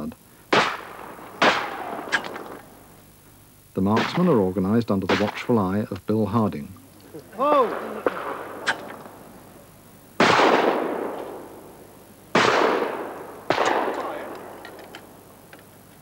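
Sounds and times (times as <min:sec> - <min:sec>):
shotgun shots: 0:00.5 - 0:02.7, 0:03.9 - 0:05.5, 0:07.6 - 0:09.2, 0:10.2 - 0:14.6
long rolling echo: 0:07.3 - 0:15.4.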